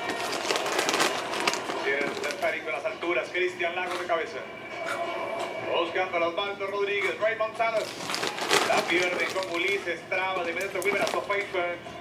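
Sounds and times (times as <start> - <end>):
man commentating: 8.6 - 11.8.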